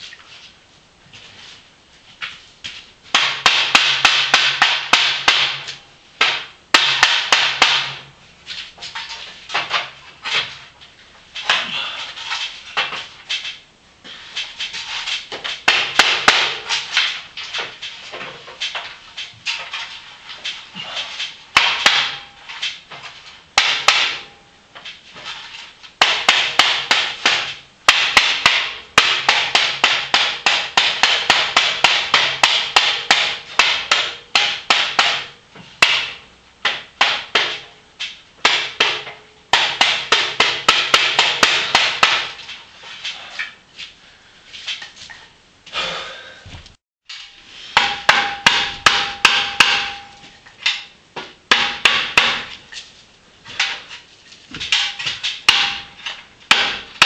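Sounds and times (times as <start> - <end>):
rapid hard knocks: 3.1 - 8.1, 15.3 - 18.9, 26.0 - 42.5, 54.5 - 57.0.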